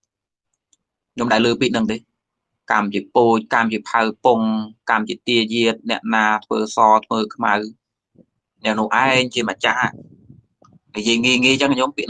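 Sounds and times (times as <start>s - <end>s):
man speaking: 1.2s - 2.1s, 2.7s - 7.8s, 8.6s - 10.2s, 10.9s - 12.0s.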